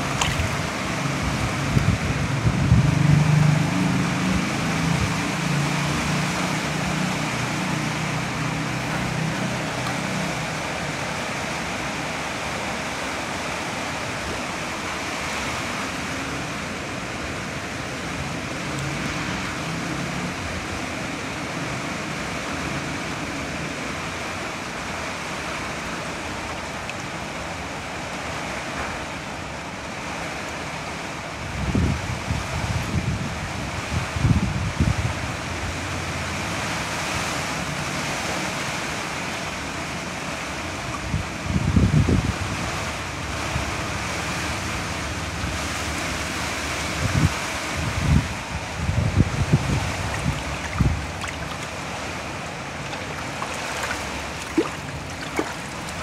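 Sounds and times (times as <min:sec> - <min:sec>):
wind buffeting microphone: 0:00.0 - 0:05.3, 0:31.4 - 0:35.4, 0:40.8 - 0:43.0, 0:46.8 - 0:56.0
water rushing: 0:00.0 - 0:31.6, 0:35.2 - 0:56.0.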